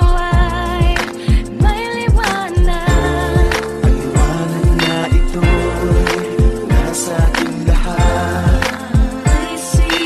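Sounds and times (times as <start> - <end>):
deep kick drum: 0.0 - 9.9
christmas pop song: 0.0 - 10.0.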